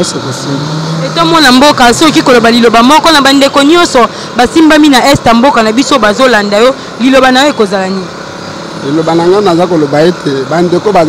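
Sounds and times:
people talking in the street: 0.0s - 11.0s.

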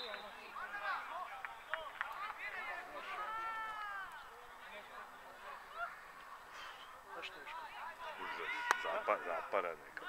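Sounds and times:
football players shouting: 7.6s - 9.5s.

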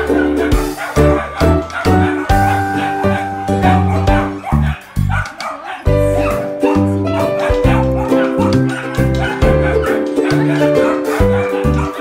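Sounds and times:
dog barking: 0.0s - 12.0s
music with steady beat and bass: 0.0s - 12.0s.

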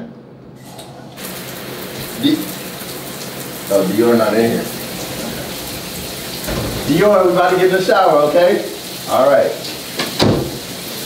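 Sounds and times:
shower water spraying: 1.2s - 11.0s.

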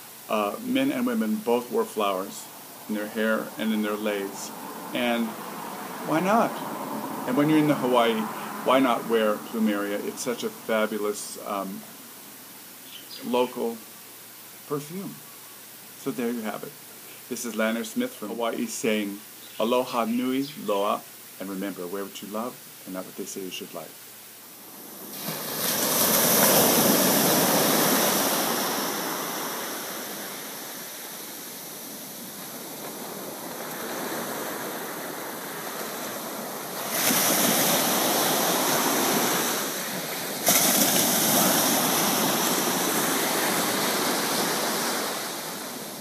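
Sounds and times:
waves washing up a beach: 0.0s - 11.8s, 24.5s - 46.0s.

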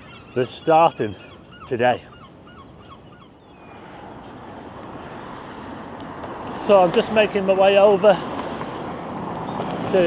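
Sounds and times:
bird honking calls: 0.0s - 4.0s
car approaching on road: 3.6s - 10.0s.

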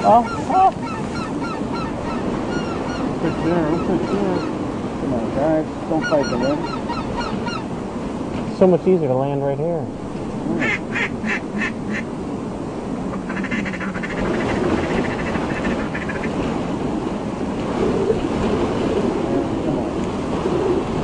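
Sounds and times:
ducks quacking: 0.0s - 4.6s, 5.9s - 7.7s, 10.4s - 12.1s, 13.1s - 16.4s.

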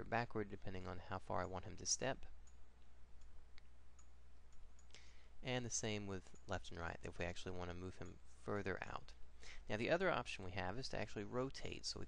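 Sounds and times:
low steady hum: 0.0s - 12.0s
computer mouse clicks: 2.4s - 5.1s.

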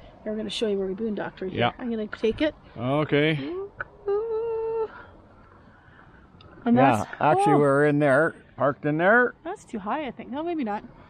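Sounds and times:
person humming: 3.5s - 4.9s.

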